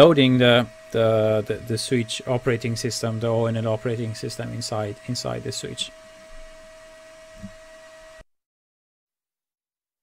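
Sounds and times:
cooling fans hissing: 0:00.0 - 0:08.2
faint constant whine: 0:00.0 - 0:08.2.

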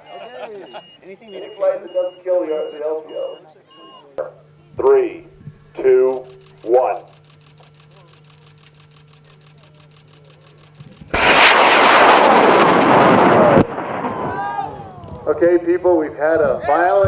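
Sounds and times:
rocket motor roaring: 0:04.7 - 0:15.8
low rumble: 0:10.7 - 0:15.6.

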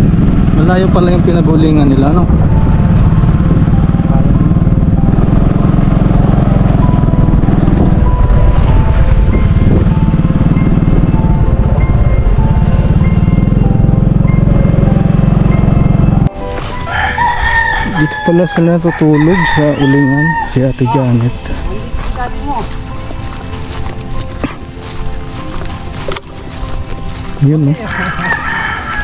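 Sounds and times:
motorcycle engine and road noise: 0:00.0 - 0:29.0
rooster crowing: 0:16.7 - 0:21.3, 0:27.7 - 0:29.0.

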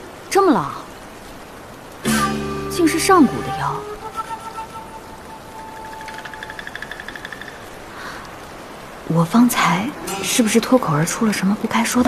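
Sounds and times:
soft background music: 0:02.0 - 0:07.8, 0:09.1 - 0:12.0.

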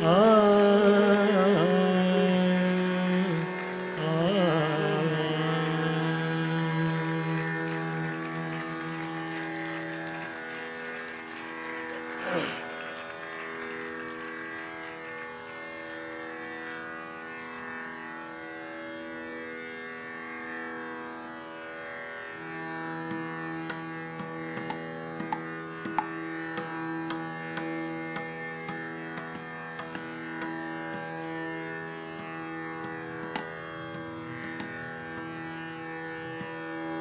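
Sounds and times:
tanpura drone: 0:00.0 - 0:37.0
sharp taps: 0:23.6 - 0:31.1.

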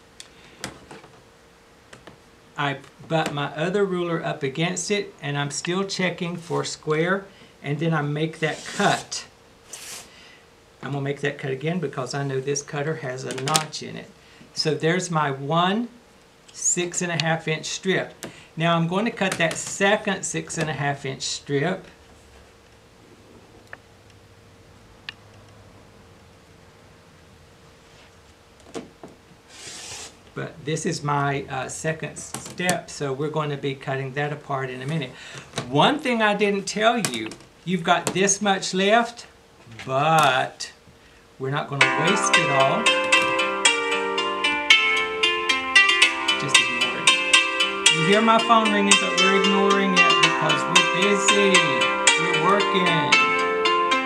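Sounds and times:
rotary cutter slicing fabric: 0:08.5 - 0:09.1, 0:29.5 - 0:30.2.

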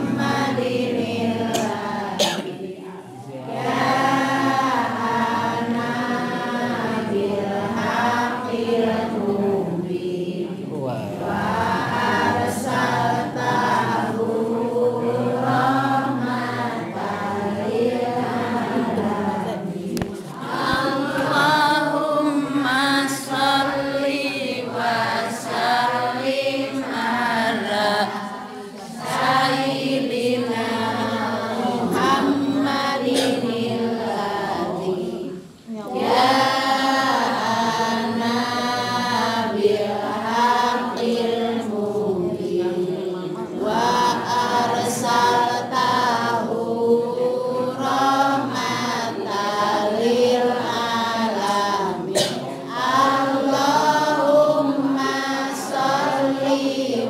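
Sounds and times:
group chanting in unison: 0:00.0 - 0:57.0.

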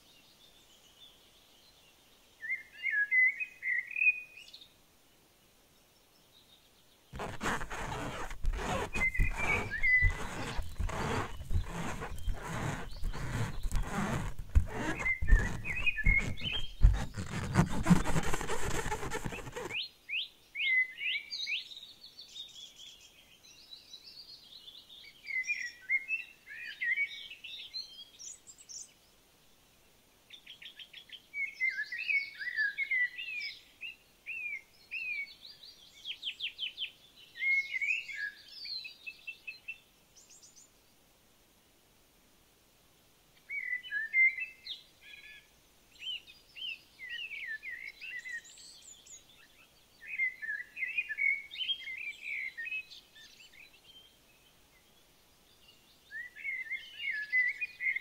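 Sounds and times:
songbirds chirping and trilling: 0:43.4 - 0:58.0.

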